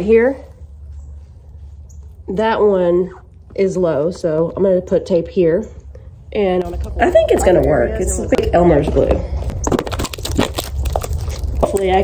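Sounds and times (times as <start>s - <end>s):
low hum: 0.0s - 12.0s
plastic wrapper crinkling: 9.4s - 12.0s.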